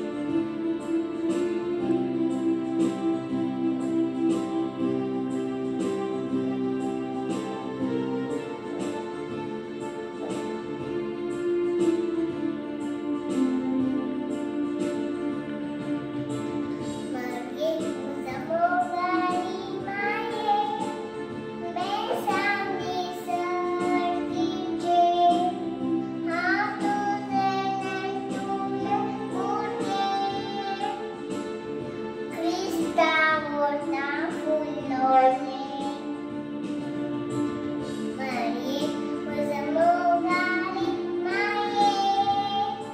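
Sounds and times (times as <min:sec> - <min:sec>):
instrumental accompaniment: 0:00.0 - 0:42.9
girl singing into a microphone: 0:17.1 - 0:21.0, 0:21.6 - 0:31.2, 0:32.3 - 0:36.1, 0:38.2 - 0:42.9.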